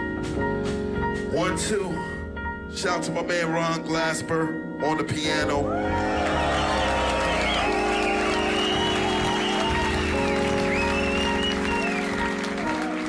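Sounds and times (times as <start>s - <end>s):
crowd applause: 5.7s - 13.0s.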